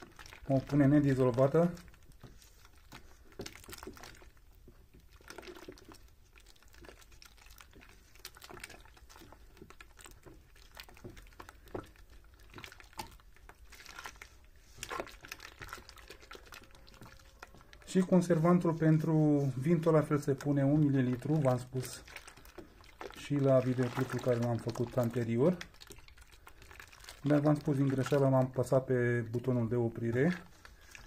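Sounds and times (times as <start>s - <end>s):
liquid sloshing in a bucket: 0.0s - 31.0s.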